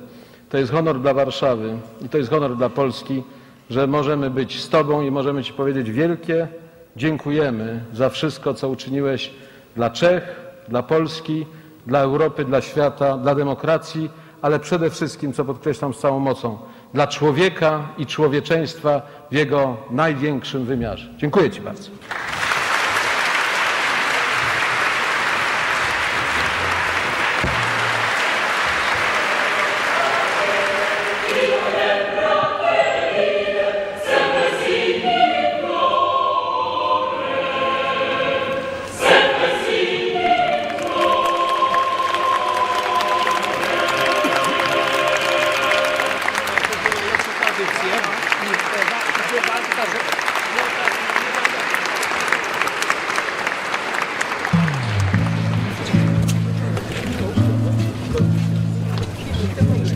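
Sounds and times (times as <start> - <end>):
audience applauding: 22.0 - 32.0, 40.5 - 57.4
choir singing: 26.0 - 47.7.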